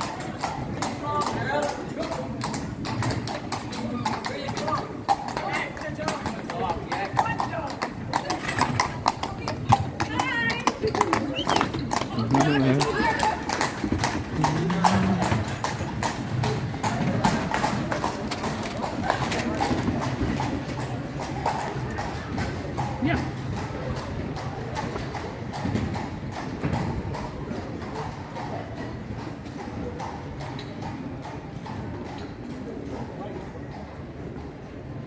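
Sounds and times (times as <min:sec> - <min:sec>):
hooves clip-clopping on cobblestones: 0:00.0 - 0:35.0
low street rumble: 0:00.0 - 0:35.0.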